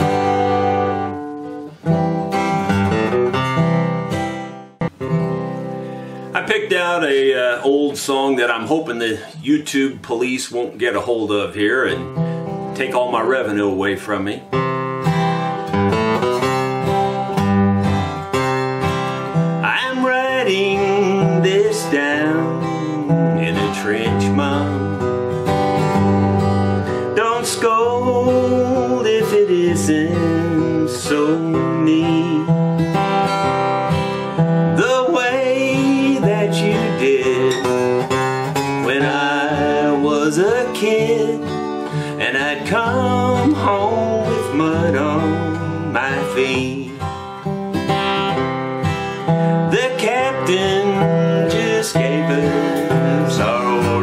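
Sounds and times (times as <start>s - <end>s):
acoustic guitar strumming: 0.0s - 54.0s
man singing: 6.3s - 12.2s, 12.8s - 14.4s, 19.6s - 25.2s, 26.9s - 32.8s, 34.7s - 47.3s, 49.2s - 54.0s.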